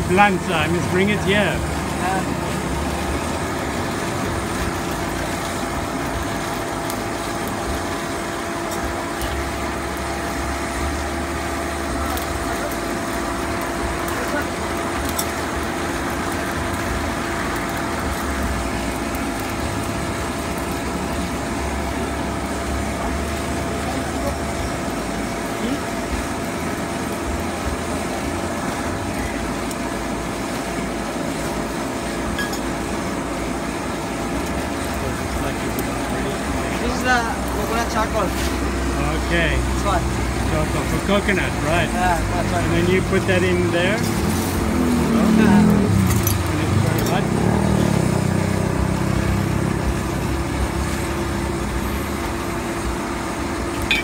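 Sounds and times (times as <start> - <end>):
fire rushing under draught: 0.0 - 54.0
electric blower humming: 42.7 - 52.9.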